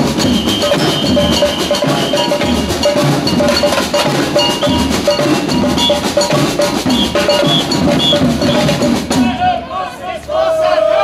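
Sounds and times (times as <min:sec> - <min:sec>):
street drum band: 0:00.0 - 0:11.0
voices calling out: 0:00.0 - 0:11.0.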